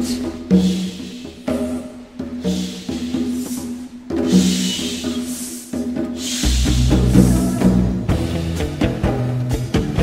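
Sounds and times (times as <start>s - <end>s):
cymbal washes: 0.0s - 7.6s
drums: 0.0s - 10.0s
heavy bass line: 6.4s - 10.0s.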